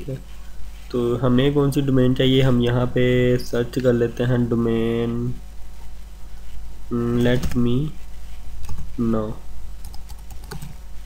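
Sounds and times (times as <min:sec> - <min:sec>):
computer keyboard keystrokes: 0:09.8 - 0:10.8.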